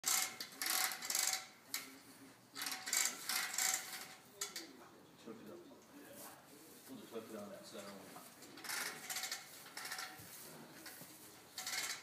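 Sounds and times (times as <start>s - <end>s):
metal clicking and rattling: 0.0s - 2.0s, 8.4s - 12.0s.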